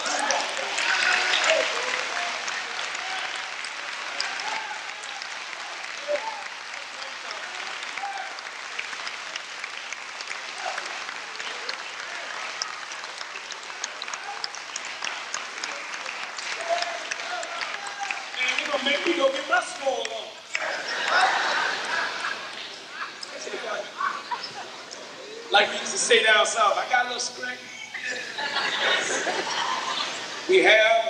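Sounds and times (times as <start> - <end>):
audience applauding: 0.0 - 26.1, 28.0 - 31.0
voices calling out: 10.5 - 31.0.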